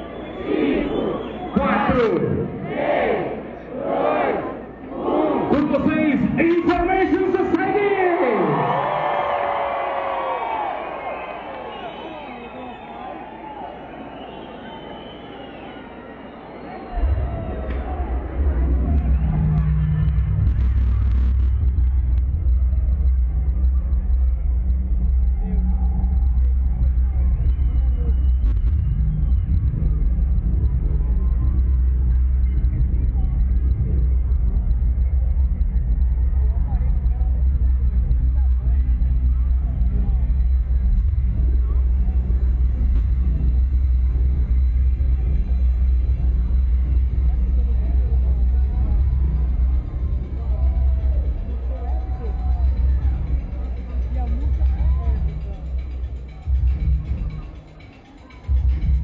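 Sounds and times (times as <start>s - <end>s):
faint crowd noise: 0.0s - 59.0s
overloaded concert rumble: 0.0s - 59.0s
synth bass drone: 16.9s - 59.0s.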